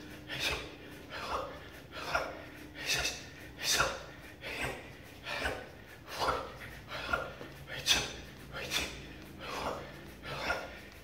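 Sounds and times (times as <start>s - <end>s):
man breathing hard: 0.0s - 11.0s.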